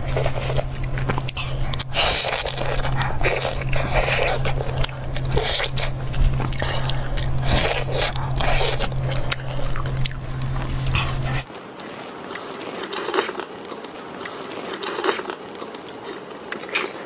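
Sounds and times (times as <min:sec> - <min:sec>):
steady low hum: 0:00.0 - 0:12.8
biting and chewing meat: 0:00.0 - 0:17.0.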